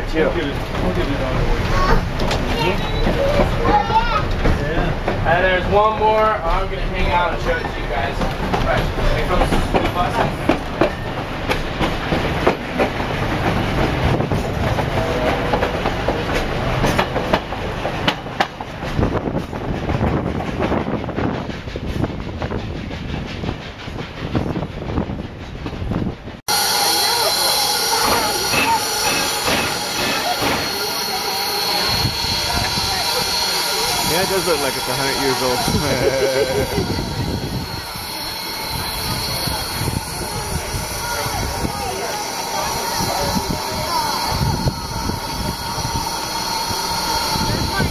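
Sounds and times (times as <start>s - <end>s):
train wheels clattering on rails: 0.0s - 26.4s, 27.8s - 47.9s
steam locomotive hissing: 0.0s - 47.9s
wheel squeal: 2.5s - 4.3s.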